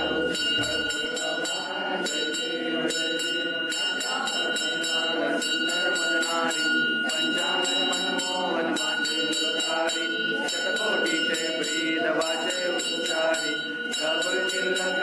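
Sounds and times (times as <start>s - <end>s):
crowd of voices singing: 0.0s - 15.0s
steady high ringing tone: 0.0s - 15.0s
temple bells rung rapidly: 0.0s - 15.0s.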